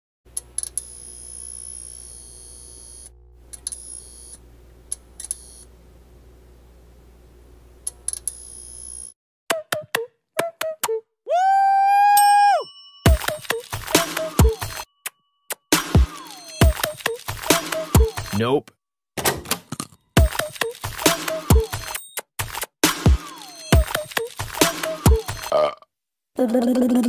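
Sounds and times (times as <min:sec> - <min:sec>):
low steady hum: 0:03.0 - 0:08.1
electronic music: 0:13.1 - 0:14.9, 0:15.7 - 0:18.5.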